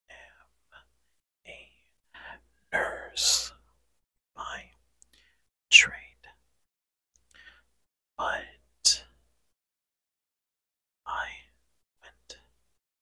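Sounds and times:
man whispering: 0:00.1 - 0:00.9, 0:01.5 - 0:03.6, 0:04.4 - 0:06.4, 0:08.2 - 0:09.2, 0:11.1 - 0:12.5.

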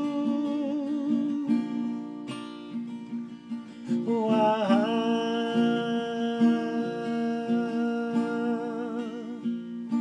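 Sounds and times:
man singing with vibrato: 0:00.0 - 0:02.9, 0:03.5 - 0:10.0
acoustic guitar strumming: 0:00.0 - 0:10.0.

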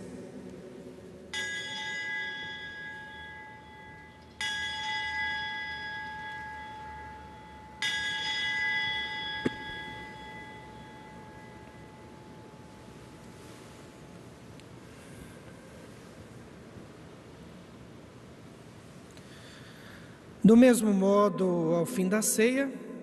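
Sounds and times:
bell ringing: 0:01.3 - 0:12.7.

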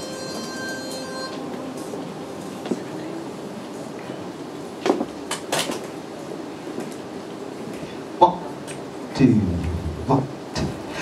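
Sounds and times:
train rumbling on rails: 0:00.0 - 0:11.0.

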